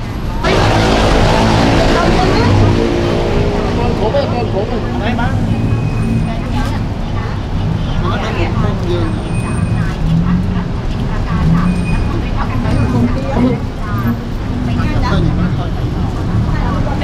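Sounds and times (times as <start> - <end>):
people talking: 0.0 - 17.0
steady low rumble: 0.2 - 8.7.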